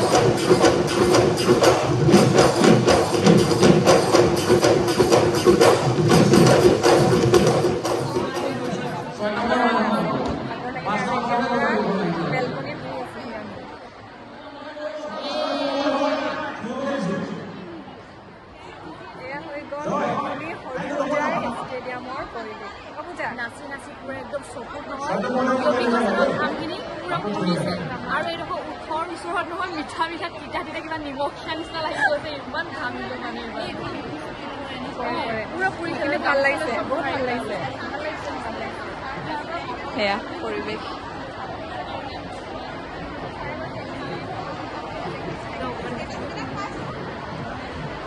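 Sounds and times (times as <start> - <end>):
drums beaten in rhythm: 0.0 - 9.0
crowd chattering: 0.0 - 48.0
women talking: 27.9 - 41.0.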